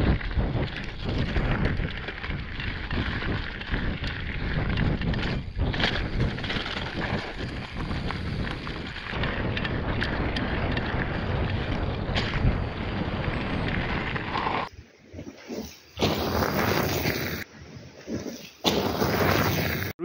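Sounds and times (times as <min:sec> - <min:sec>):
bike clicks and knocks: 0:00.0 - 0:14.7
wind rushing over microphone: 0:00.0 - 0:20.0.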